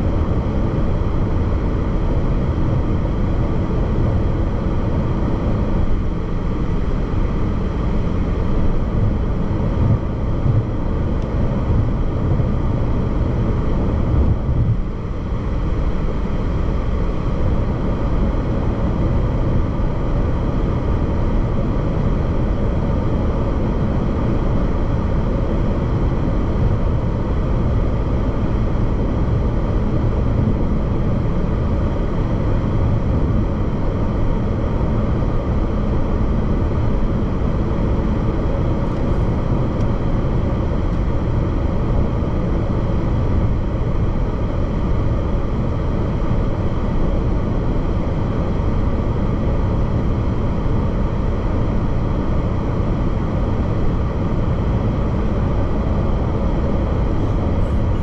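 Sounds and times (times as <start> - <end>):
car road noise from inside cabin: 0.0 - 58.0.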